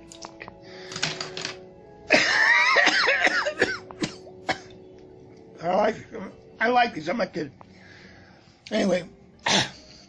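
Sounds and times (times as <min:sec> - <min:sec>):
sustained background music: 0:00.0 - 0:10.0
man coughing and hacking: 0:02.1 - 0:04.8, 0:09.4 - 0:09.8
breathy exhale: 0:07.7 - 0:08.6.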